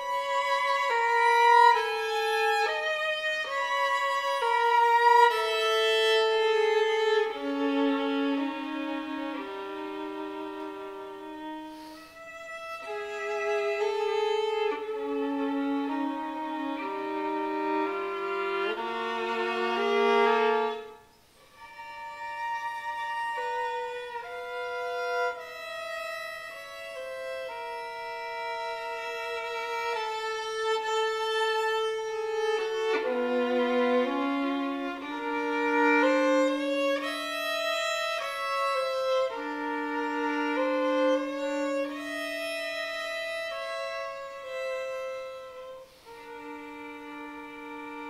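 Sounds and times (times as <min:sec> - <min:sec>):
solo violin bowed notes: 0:00.0 - 0:48.0.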